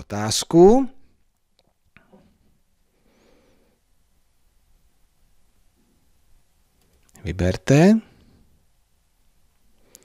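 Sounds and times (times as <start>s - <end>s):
soft faint hiss: 0.0s - 10.0s.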